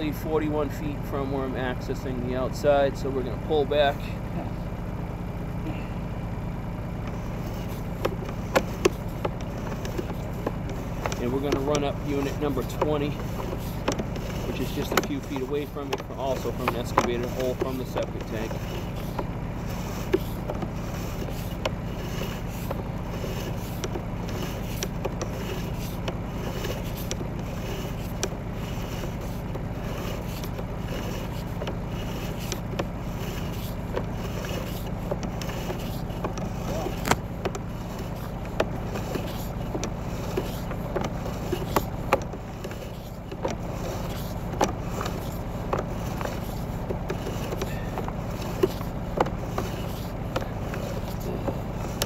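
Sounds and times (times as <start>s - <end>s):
low engine hum: 0.0s - 52.0s
cable clicking and scraping: 7.0s - 52.0s.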